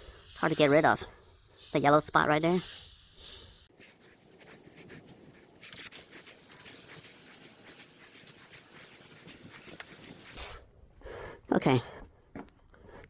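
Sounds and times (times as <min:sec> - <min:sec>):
dog panting: 0:03.8 - 0:10.3.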